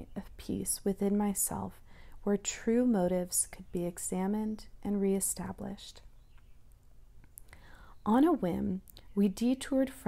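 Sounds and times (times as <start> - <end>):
faint low hum: 0.0 - 10.0
soft breathing: 1.8 - 2.2, 7.4 - 8.1.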